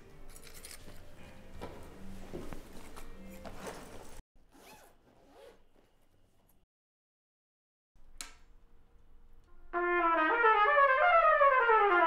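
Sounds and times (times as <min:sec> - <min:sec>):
zipper on a case being opened: 0:04.4 - 0:05.7.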